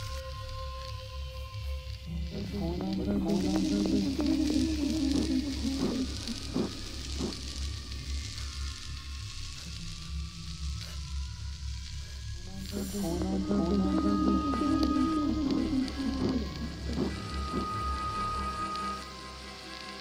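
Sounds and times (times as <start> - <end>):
low pulsing drone: 0.0 - 20.0
steady hissing noise: 0.0 - 20.0.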